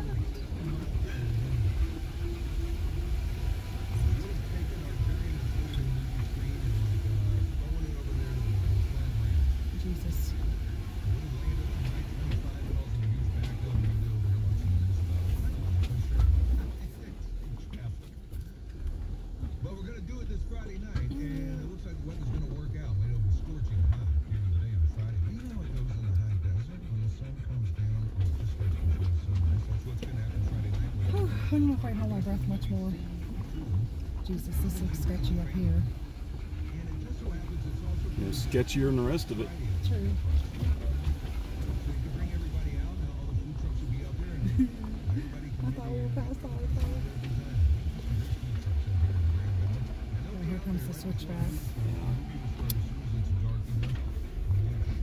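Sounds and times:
low engine rumble: 0:00.0 - 0:55.0.

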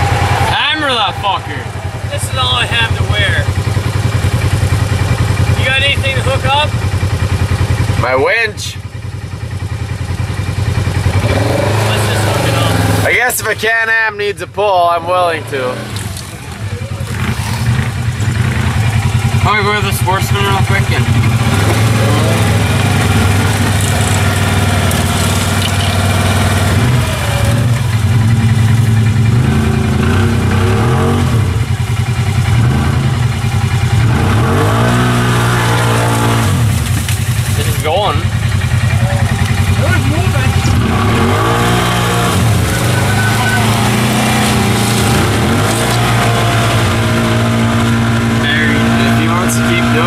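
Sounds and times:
atv engine idling: 0:00.0 - 0:50.0.

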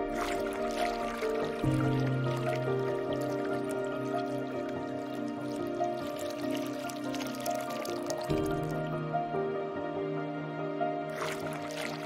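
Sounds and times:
water dripping and trickling: 0:00.0 - 0:09.0, 0:11.1 - 0:12.0
ambient synthesizer music: 0:00.0 - 0:12.0.

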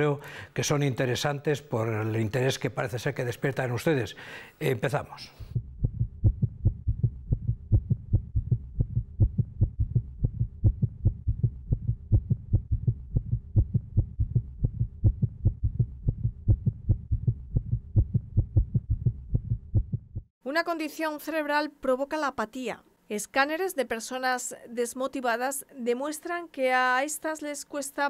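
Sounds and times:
fast heartbeat thumps: 0:05.5 - 0:20.3.

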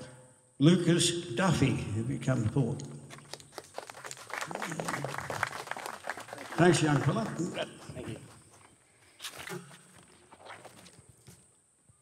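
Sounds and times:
faint voice: 0:04.4 - 0:08.3.

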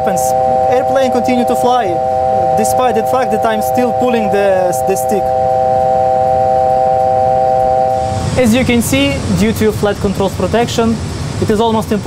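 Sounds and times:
steady multi-pitch tone: 0:00.0 - 0:10.3.

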